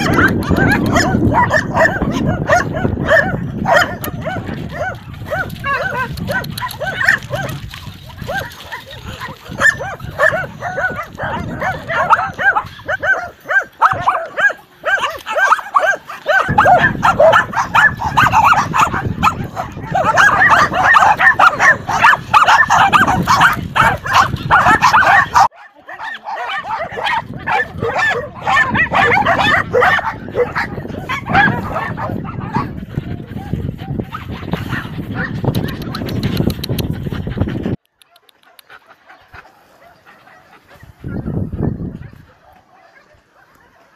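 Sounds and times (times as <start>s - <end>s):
many dogs barking: 0.0s - 43.9s.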